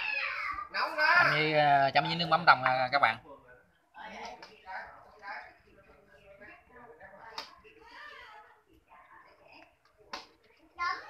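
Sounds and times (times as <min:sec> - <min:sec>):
faint background voices: 0:03.2 - 0:11.0.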